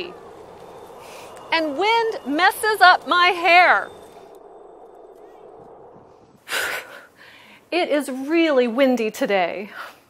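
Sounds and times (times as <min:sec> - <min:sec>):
low street background hum: 0:00.0 - 0:09.6.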